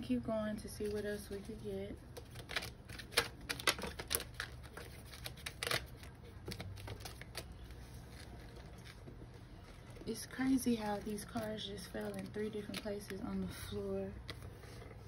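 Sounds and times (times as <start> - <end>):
cards being shuffled by hand: 0.8 - 15.0.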